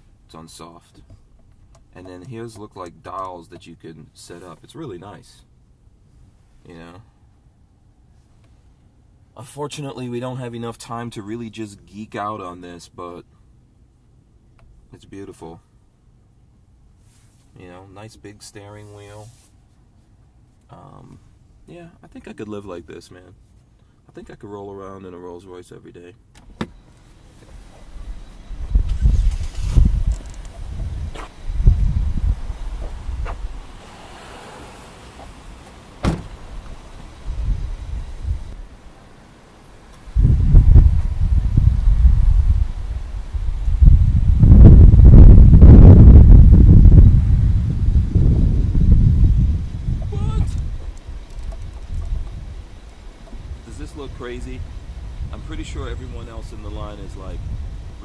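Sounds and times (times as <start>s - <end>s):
car rumbling: 26.4s - 58.0s
wind buffeting: 27.5s - 58.0s.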